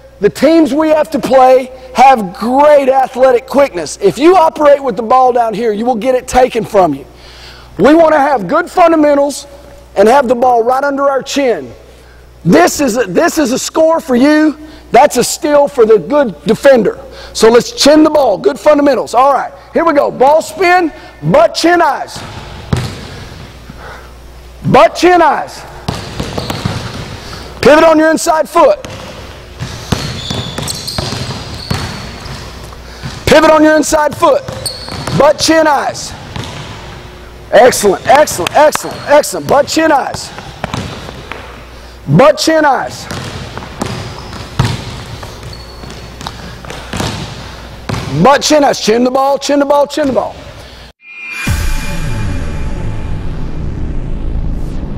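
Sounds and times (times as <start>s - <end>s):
basketball bouncing on wooden floor: 22.2s - 23.1s, 25.9s - 27.2s, 28.8s - 33.3s, 34.1s - 35.3s, 36.2s - 36.8s, 38.0s - 41.5s, 43.0s - 48.2s.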